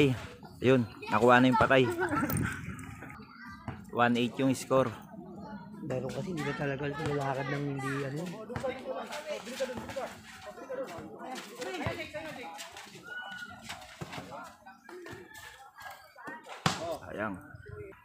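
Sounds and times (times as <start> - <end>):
voices calling out and chattering: 0.0 - 18.0.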